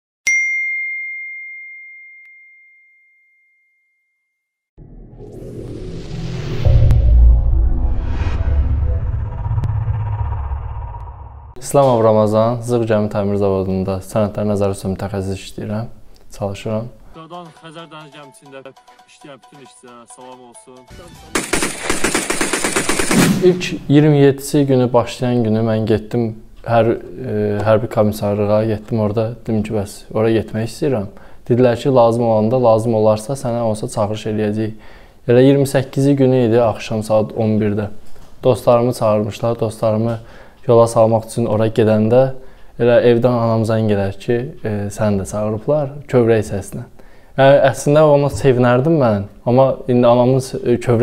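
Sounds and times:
automatic rifle fire: 0:21.3 - 0:23.6.

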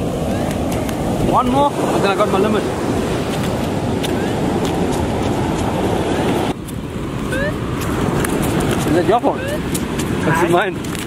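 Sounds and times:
surf washing: 0:00.0 - 0:11.0
wind on microphone: 0:00.0 - 0:11.0.

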